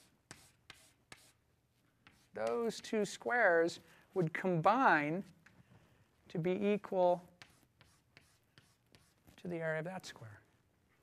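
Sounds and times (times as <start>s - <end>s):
chalk rubbing on blackboard: 0.0s - 3.2s, 7.2s - 9.4s.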